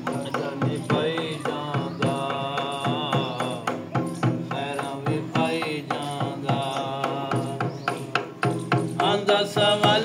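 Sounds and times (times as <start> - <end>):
man singing long held notes: 0.0 - 8.1, 9.0 - 10.0
large drum beat: 0.0 - 10.0.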